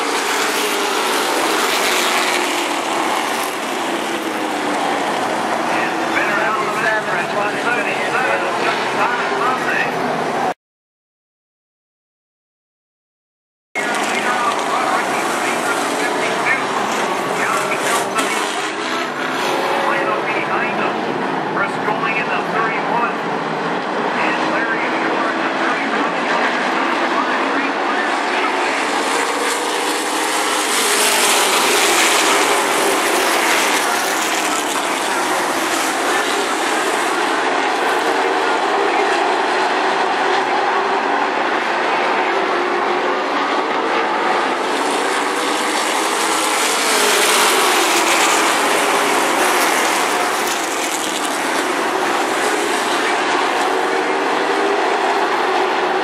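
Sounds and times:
race car engines roaring: 0.0 - 10.6, 13.8 - 56.0.

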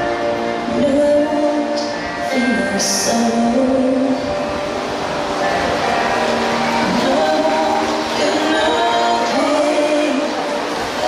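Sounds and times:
loud show music: 0.0 - 11.0
water rushing and splashing: 0.0 - 11.0.

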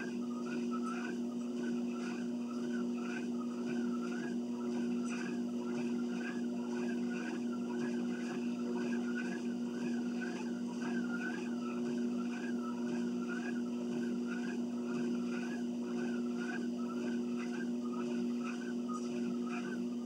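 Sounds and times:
exercise machine motor hum: 0.0 - 20.0
rhythmic squeak: 0.0 - 20.0.

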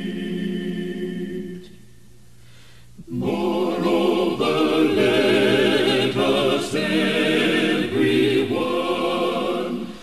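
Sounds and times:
choir singing: 0.0 - 1.8, 3.1 - 10.0.

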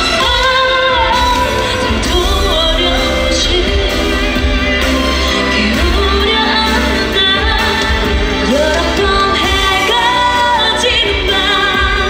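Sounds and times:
pop backing track with heavy bass: 0.0 - 12.0
woman singing: 0.0 - 12.0.

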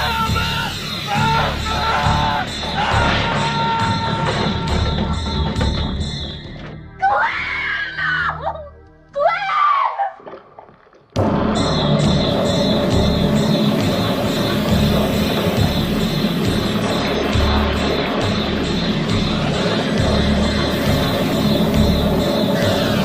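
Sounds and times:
music with a steady beat: 11.2 - 23.0.

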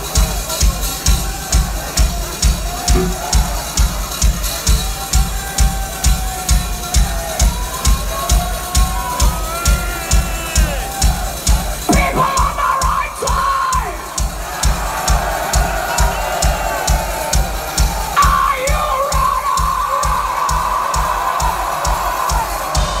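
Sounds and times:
bass drum beat through pa: 0.0 - 23.0
crowd shouting and cheering: 0.0 - 23.0.

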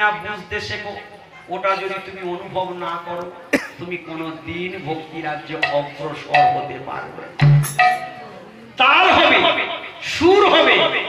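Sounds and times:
man speaking through microphone: 0.0 - 7.4, 8.4 - 11.0
man coughing: 3.5 - 3.9.

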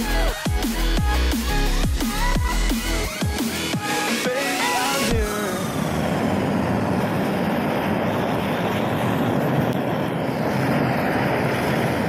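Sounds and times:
gas torch burning: 4.5 - 12.0.

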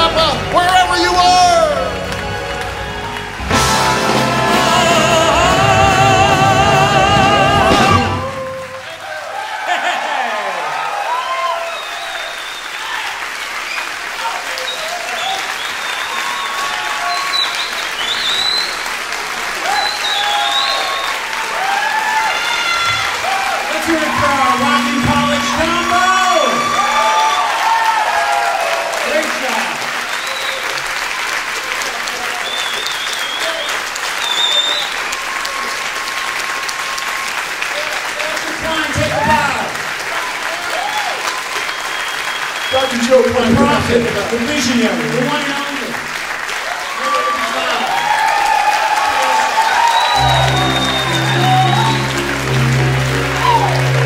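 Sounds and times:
audience clapping: 0.0 - 54.0
crowd cheering: 0.0 - 54.0.

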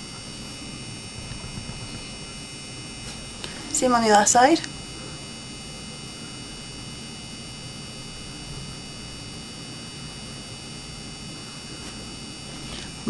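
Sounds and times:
faint electrical hum: 0.0 - 13.0
high-pitched whines: 0.0 - 13.0.

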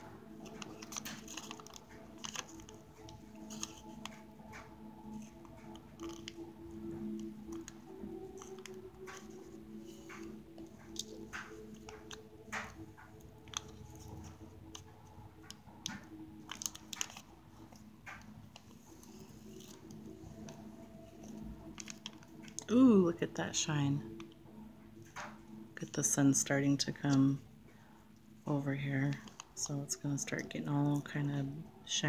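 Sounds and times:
low steady hum: 0.0 - 32.0
beadwork clicks and rustles: 0.1 - 22.7.

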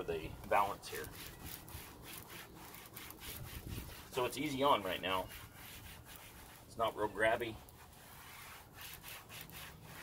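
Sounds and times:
applicator pad rubbing on plastic: 7.6 - 10.0.

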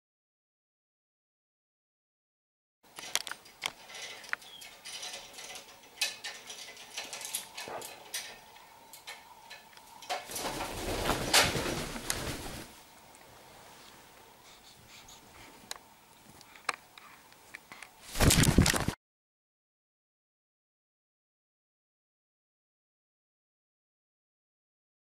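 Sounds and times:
clicks and scratching: 2.9 - 10.5
rustling and scuffling: 10.1 - 14.1, 18.0 - 19.0.

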